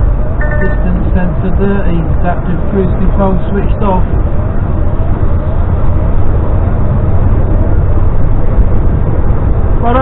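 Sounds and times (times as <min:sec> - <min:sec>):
lorry engine and tyre rumble: 0:00.0 - 0:10.0.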